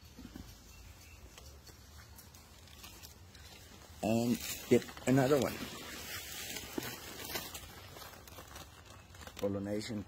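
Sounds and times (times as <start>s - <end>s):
rustling and crackling: 0.0s - 10.0s.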